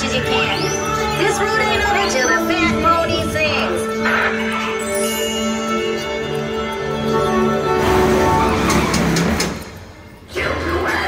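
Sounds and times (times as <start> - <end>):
music: 0.0 - 11.0
rushing noise: 7.7 - 10.2.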